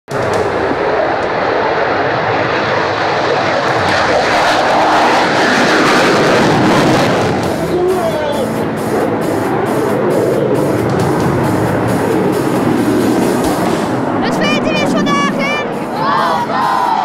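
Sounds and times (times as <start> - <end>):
jet engine roaring: 0.1 - 17.0.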